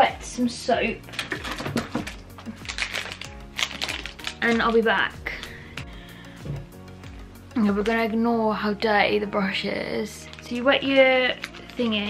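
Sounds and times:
soft background music: 0.0 - 12.0
clicks and rustles of handling: 1.0 - 4.8, 10.2 - 12.0
plastic wrapper crinkling: 1.0 - 5.6, 10.0 - 12.0.

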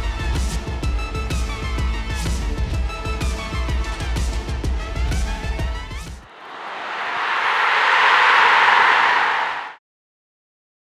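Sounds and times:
whoosh sound effect: 6.3 - 9.8.

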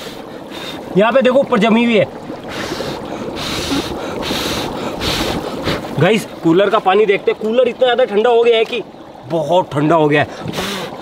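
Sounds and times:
dry ice boiling in water: 0.0 - 11.0.

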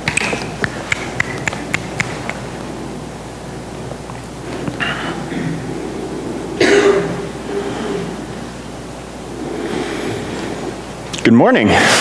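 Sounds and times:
low room noise: 0.0 - 12.0
loud cough: 6.6 - 8.2.

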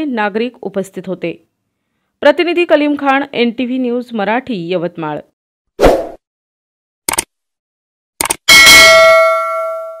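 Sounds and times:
quick clicks: 7.1 - 7.3, 8.2 - 8.4
notification bell ding: 8.5 - 10.0.

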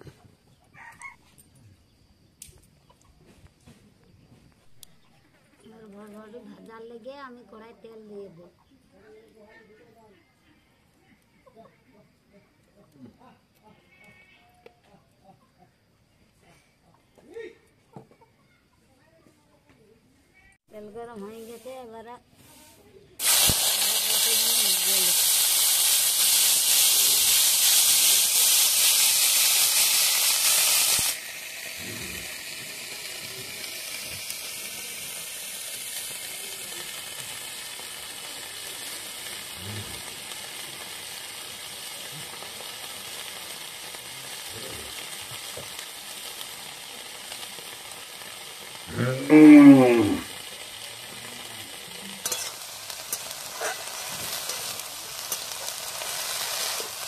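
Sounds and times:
beans frying in hot oil: 23.2 - 57.0.

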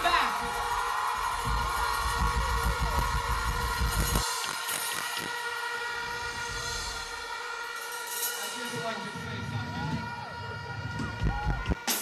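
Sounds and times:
stage music with heavy bass: 0.0 - 12.0.

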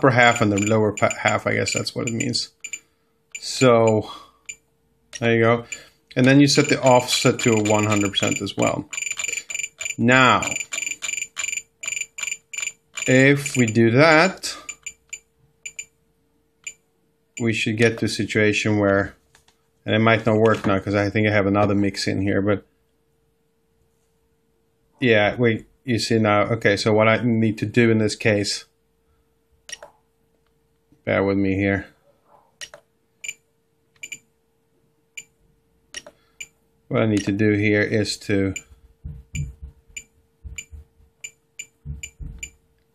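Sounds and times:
rapid high beeps: 0.0 - 4.6, 6.5 - 13.8, 14.6 - 15.9, 34.0 - 34.2, 40.0 - 42.6
scroll roller ticking: 0.0 - 13.8, 14.5 - 15.9.

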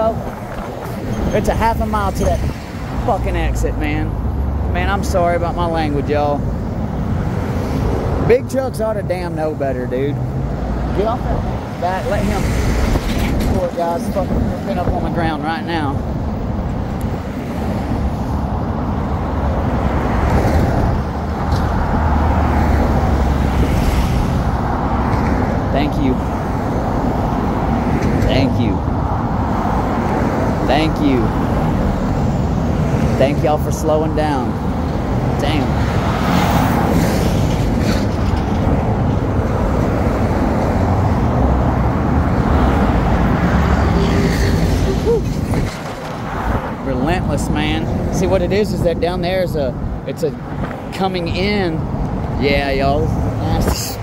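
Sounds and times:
highway traffic rushing past: 0.0 - 54.0.

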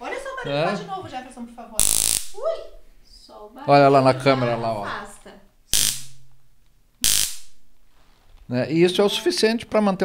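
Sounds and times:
stun gun electric arcing: 1.8 - 2.4, 5.7 - 6.4, 7.0 - 7.8.

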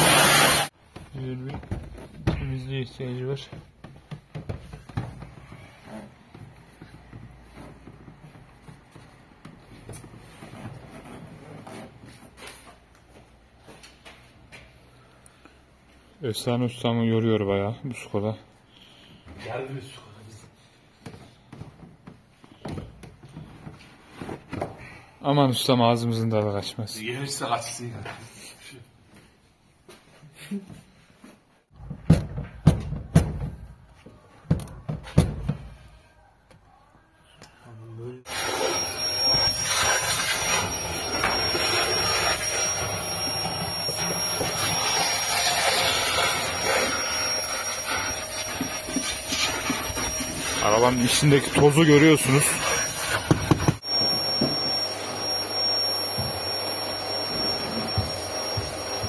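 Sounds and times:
cleaning machine motor hissing: 0.0 - 0.7, 38.3 - 59.0.

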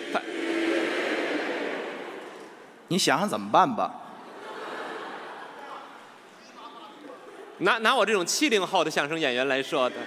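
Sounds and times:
audience laughing: 0.0 - 2.8, 4.2 - 6.1.

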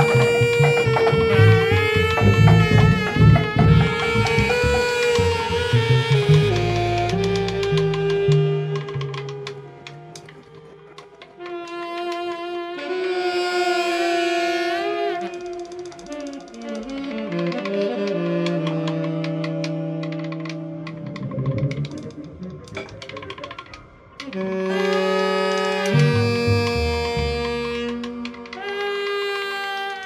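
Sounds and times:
saxophone bending held notes: 0.0 - 30.0.

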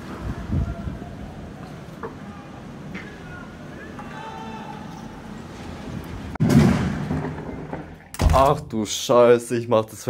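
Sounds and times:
crane sections crashing to ground: 6.4 - 8.4.

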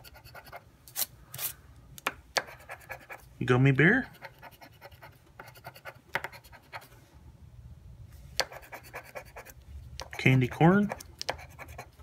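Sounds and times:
scratching lottery ticket: 10.2 - 12.0.

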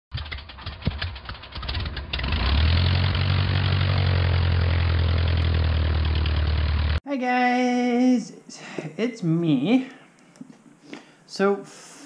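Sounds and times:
engine starting and running: 0.1 - 7.0.

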